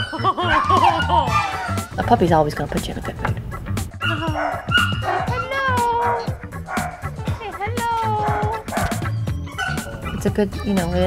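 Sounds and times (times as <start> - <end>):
puppies whimpering and yipping: 0.0 - 1.9, 4.0 - 11.0
background music: 0.0 - 11.0.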